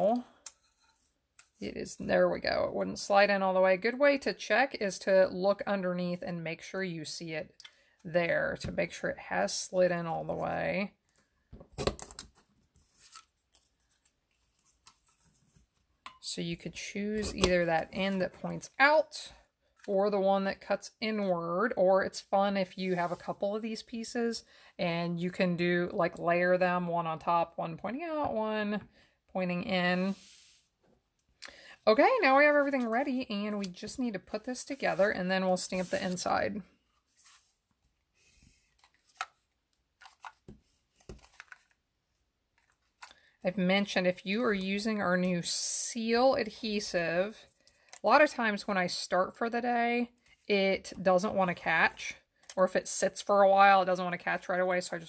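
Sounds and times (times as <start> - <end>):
paper rustling: 34.6 - 36.3, 40.0 - 41.8.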